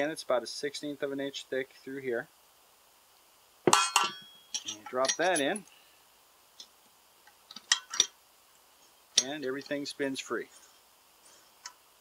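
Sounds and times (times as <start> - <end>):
light metal clicks and clinks: 3.8 - 5.8, 9.2 - 9.8.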